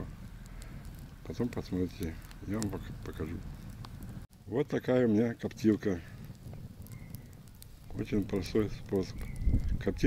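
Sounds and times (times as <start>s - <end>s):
wood fire crackling: 0.0s - 10.0s.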